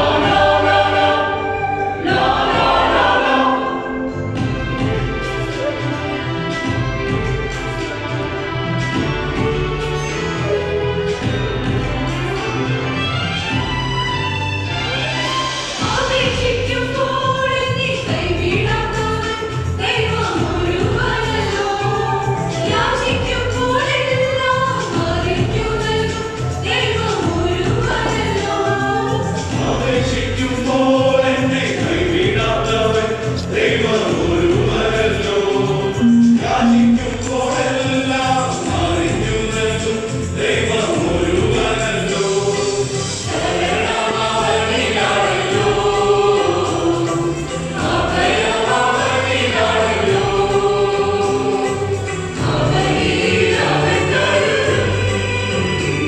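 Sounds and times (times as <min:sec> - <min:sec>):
mixed choir singing in harmony: 0:00.0 - 0:08.0, 0:14.9 - 0:56.0
electronic keyboard accompaniment: 0:35.8 - 0:38.0
low bass line: 0:35.9 - 0:37.7.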